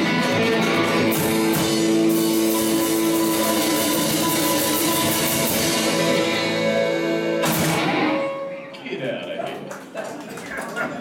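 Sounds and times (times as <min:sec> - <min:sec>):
live rock band: 0:00.0 - 0:08.9.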